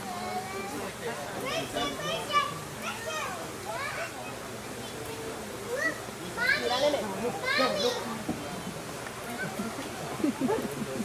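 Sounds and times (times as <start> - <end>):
murmur of talk: 0.0 - 11.0.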